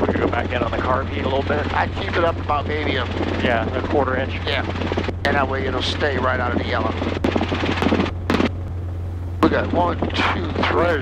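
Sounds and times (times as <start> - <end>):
helicopter cabin drone: 0.0 - 11.0.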